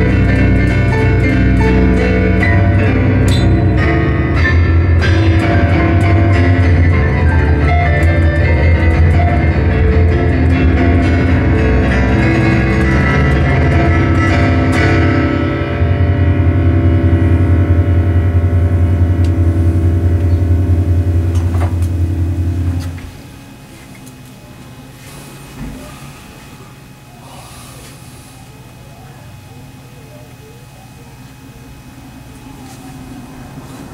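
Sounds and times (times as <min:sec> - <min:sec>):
digital piano chords and runs: 0:00.0 - 0:33.9.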